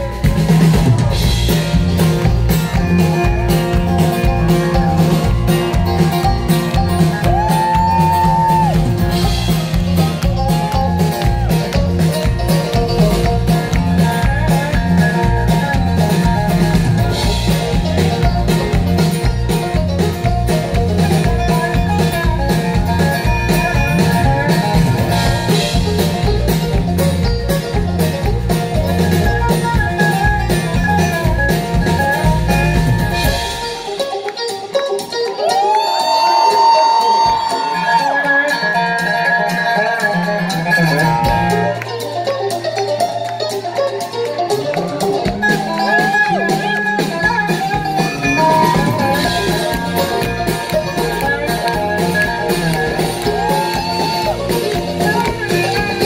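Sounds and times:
electric bass: 0.0 - 34.1, 38.5 - 56.0
picked banjo: 0.0 - 56.0.

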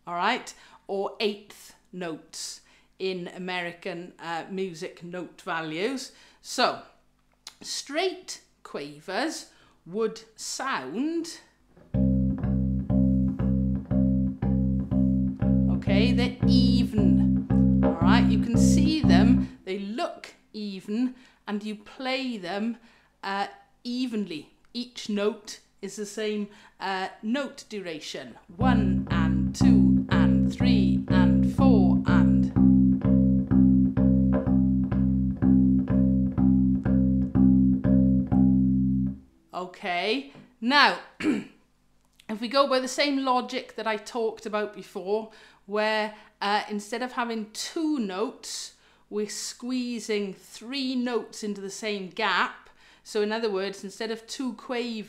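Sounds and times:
bass ukulele plucking low note: 11.9 - 19.6, 28.6 - 39.2.

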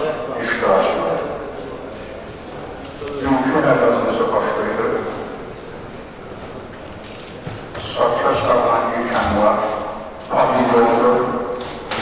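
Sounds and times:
man speaking into a microphone: 0.0 - 1.8, 3.0 - 5.4, 7.7 - 11.6.

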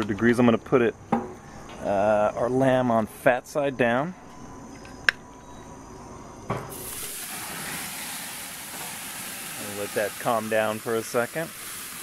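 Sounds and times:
meat sizzling on grill: 6.7 - 12.0.

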